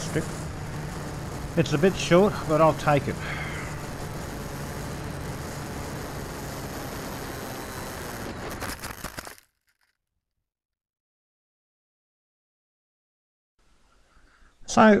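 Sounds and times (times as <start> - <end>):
crackling scrapes on grass: 0.0 - 9.5
model plane motor: 0.0 - 9.5.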